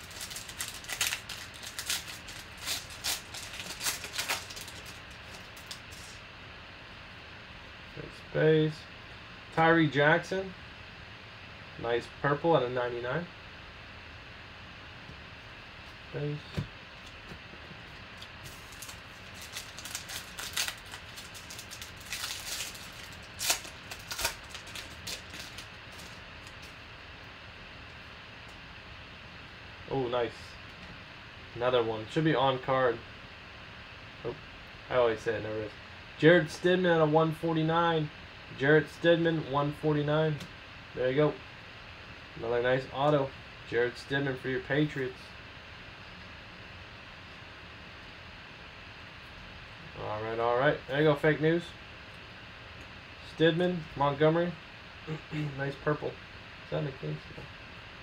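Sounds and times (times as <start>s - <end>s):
foil wrapper tearing and crinkling: 0.0s - 6.2s, 18.4s - 26.7s.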